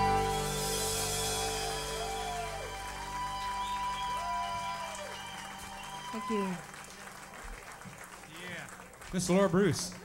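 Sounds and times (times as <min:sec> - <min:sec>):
live band playing a ballad: 0:00.0 - 0:05.9.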